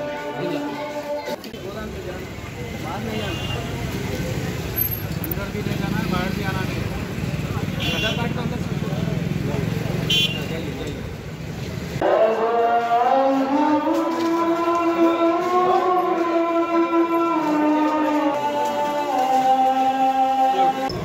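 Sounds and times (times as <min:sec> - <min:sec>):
people talking: 0:00.0 - 0:11.2
street traffic: 0:00.0 - 0:21.0.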